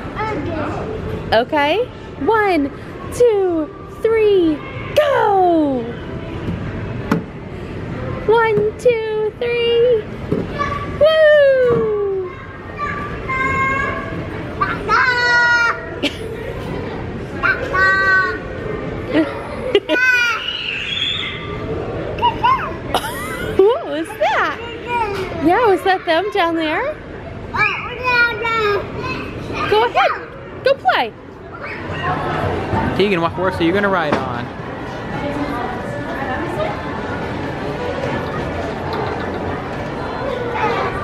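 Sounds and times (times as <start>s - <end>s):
background chatter: 0.0s - 41.0s
busy indoor play area noise: 0.0s - 41.0s
children calling out: 19.1s - 21.5s.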